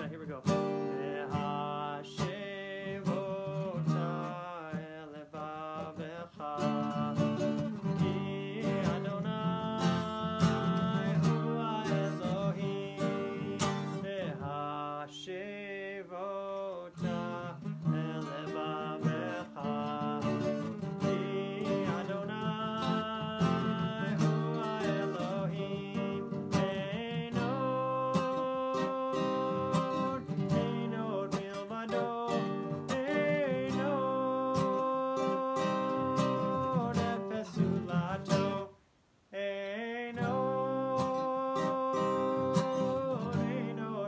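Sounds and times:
acoustic guitar strumming: 0.0s - 15.7s, 16.5s - 38.8s, 40.1s - 44.0s
man singing: 0.0s - 44.0s.

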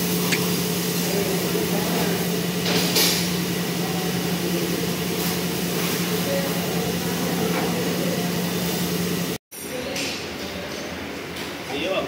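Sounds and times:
water jet hissing: 0.0s - 2.4s
pressure washer motor hum: 0.0s - 9.4s.

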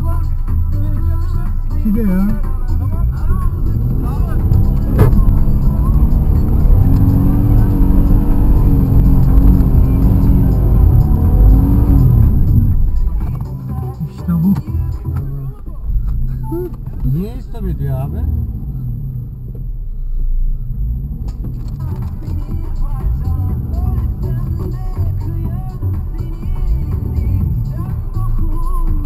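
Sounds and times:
car engine working hard: 0.0s - 29.0s.

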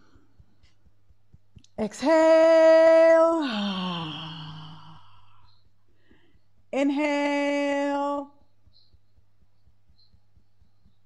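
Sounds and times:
low hummed tone: 0.0s - 11.0s.

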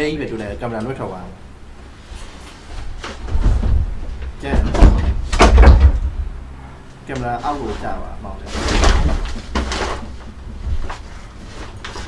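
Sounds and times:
wooden panels scraping and knocking: 2.8s - 6.2s, 7.2s - 12.0s.

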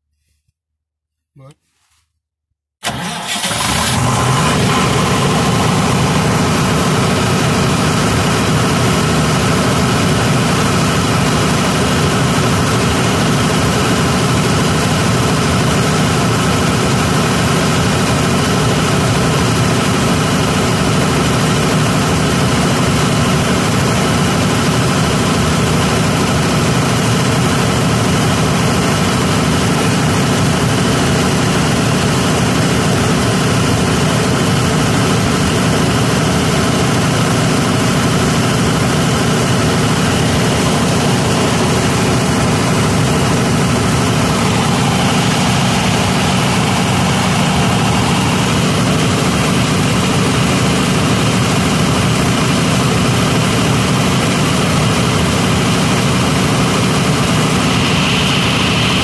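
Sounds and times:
diesel generator running: 2.8s - 59.0s.

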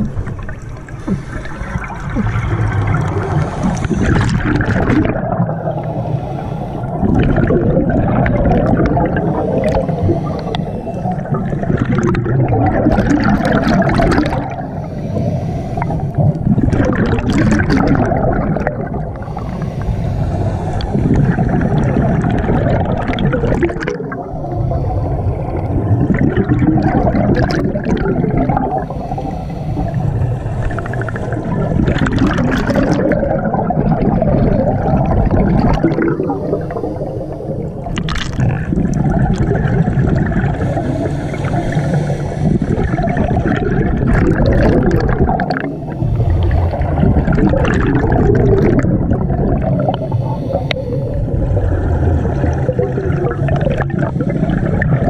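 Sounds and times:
rushing exhale bubbles: 0.0s - 55.0s
diver breathing through regulator: 0.8s - 2.5s, 3.2s - 11.9s, 13.0s - 22.6s, 24.2s - 33.2s, 34.3s - 37.9s, 38.5s - 55.0s.

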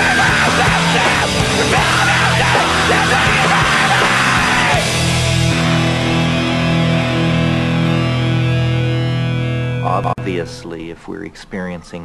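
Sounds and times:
screamed vocal: 0.0s - 5.2s
punk band playing: 0.0s - 10.4s.

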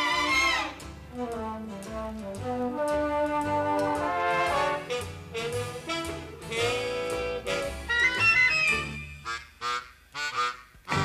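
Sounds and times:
instrumental band music with brass: 0.0s - 11.0s.

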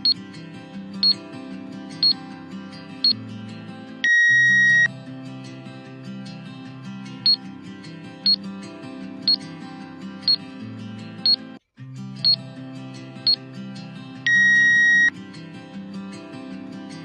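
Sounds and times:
background music: 0.0s - 17.0s
electronic buzzer tone: 4.0s - 4.9s, 14.3s - 15.1s
short high beeps: 4.0s - 4.9s, 14.3s - 15.1s.

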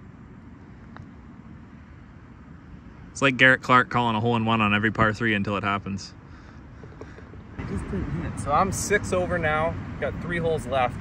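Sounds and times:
low outdoor rumble: 0.0s - 11.0s
putter striking golf ball: 6.8s - 7.5s.

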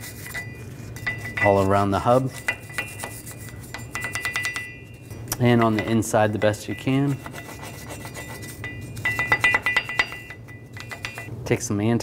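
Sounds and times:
wire brush scrubbing metal: 0.0s - 11.3s.

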